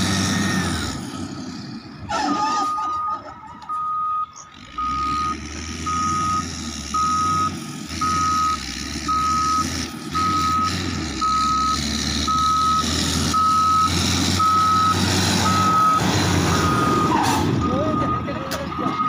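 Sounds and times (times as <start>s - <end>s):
diesel engine rumble: 0.0s - 19.0s
backup alarm beeping: 2.2s - 19.0s.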